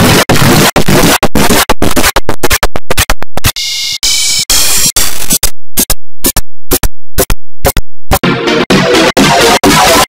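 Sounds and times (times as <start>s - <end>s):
harsh distorted noise in bursts: 0.0s - 3.6s, 4.2s - 10.0s.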